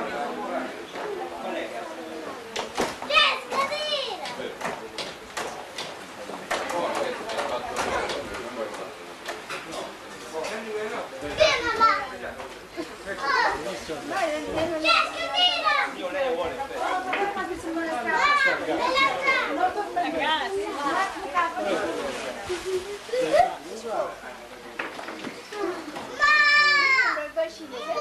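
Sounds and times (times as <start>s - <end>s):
children calling out and chattering: 0.0s - 4.6s, 10.4s - 24.2s, 25.2s - 28.0s.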